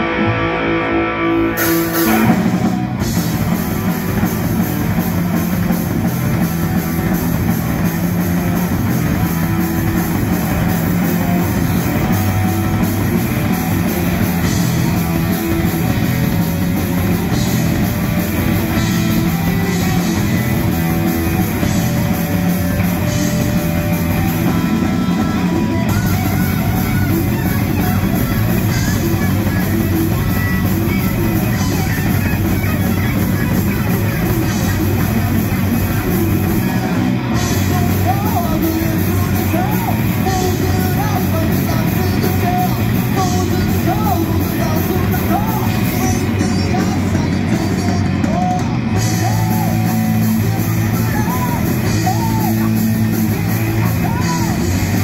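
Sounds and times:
distorted electric guitars: 0.0s - 55.0s
heavy metal band playing: 0.0s - 55.0s
lead guitar notes and bends: 0.0s - 55.0s
pounding drum kit: 0.0s - 55.0s.

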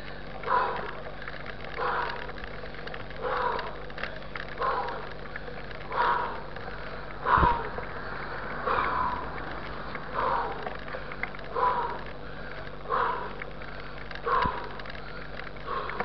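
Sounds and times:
heavy rhythmic breathing: 0.0s - 16.0s.

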